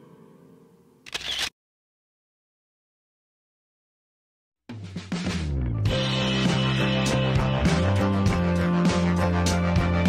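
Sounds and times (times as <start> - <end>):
camera shutter click: 1.1 - 1.6.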